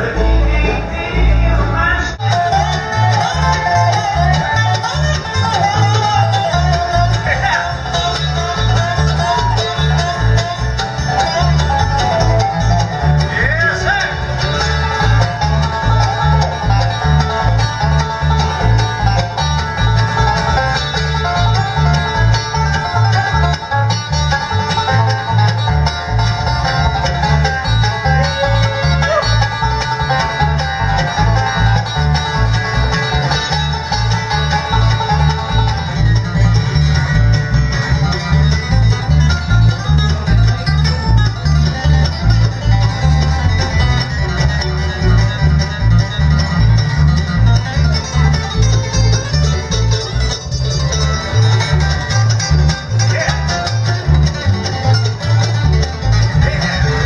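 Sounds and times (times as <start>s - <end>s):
acoustic guitar: 0.0s - 57.0s
banjo: 0.0s - 57.0s
mandolin: 0.0s - 57.0s
upright bass: 0.0s - 57.0s.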